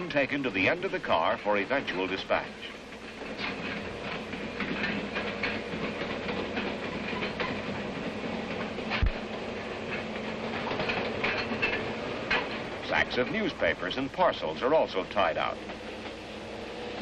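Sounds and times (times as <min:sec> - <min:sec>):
train wheels clicking over rail joints: 0:00.0 - 0:17.0.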